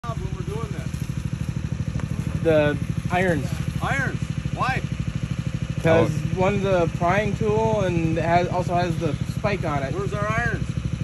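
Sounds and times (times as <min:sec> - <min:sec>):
small engine running: 0:00.0 - 0:11.0
person speaking: 0:05.8 - 0:06.4.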